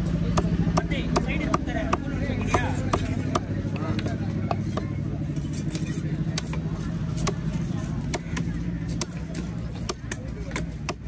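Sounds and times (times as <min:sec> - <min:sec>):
knife chopping fish on wooden block: 0:00.3 - 0:03.5, 0:06.3 - 0:06.6, 0:07.2 - 0:11.0.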